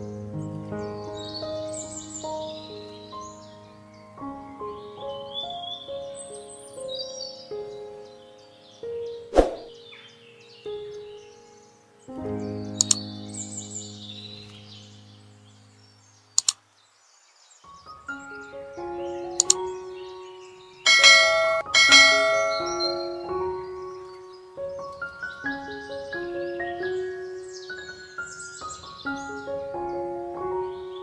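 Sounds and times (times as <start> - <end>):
mouse-click sound effect: 9.4 - 9.7, 12.8 - 13.0, 16.4 - 16.6, 19.4 - 19.6
soft chime-like background music: 20.8 - 24.2.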